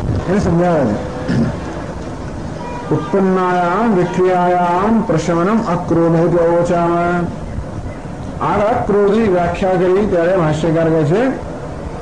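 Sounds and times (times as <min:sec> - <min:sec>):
man speaking: 0:00.2 - 0:01.1, 0:02.9 - 0:07.4, 0:08.4 - 0:11.4.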